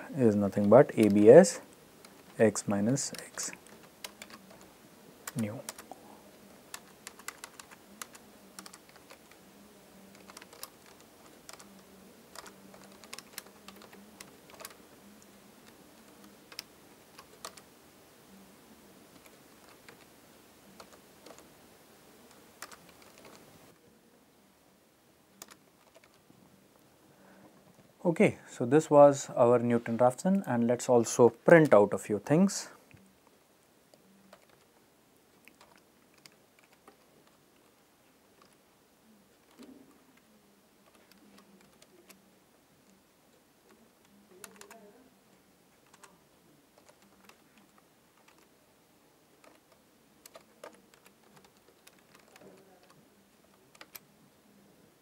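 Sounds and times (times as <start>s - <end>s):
faint keyboard keystrokes: 0.5s - 1.2s, 3.0s - 6.0s, 6.7s - 9.4s, 10.1s - 14.8s, 15.6s - 17.7s, 20.8s - 21.5s, 22.3s - 23.5s, 25.4s - 26.2s, 33.9s - 34.7s, 35.3s - 37.7s, 38.4s - 38.6s, 40.8s - 42.2s, 43.7s - 44.9s, 45.8s - 46.2s, 46.8s - 48.5s, 49.4s - 54.1s
keyboard keystroke clicks: 49.4s - 53.0s.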